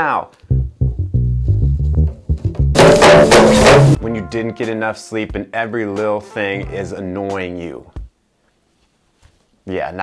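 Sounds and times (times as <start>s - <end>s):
electric bass guitar plucking: 0.5s - 4.1s
loud crashing burst of music: 2.8s - 4.0s.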